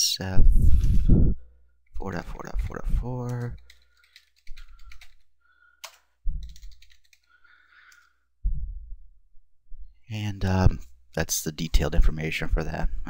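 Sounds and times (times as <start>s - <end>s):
computer keyboard typing: 3.2s - 8.1s
heavy low thuds: 8.4s - 9.1s.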